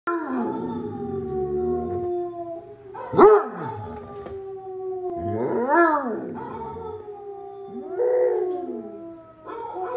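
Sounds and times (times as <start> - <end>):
dog howling: 0.1 - 9.9.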